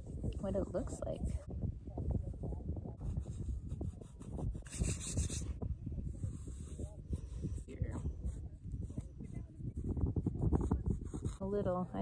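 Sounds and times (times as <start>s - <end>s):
fingers scraping damp sand: 3.1s - 5.6s.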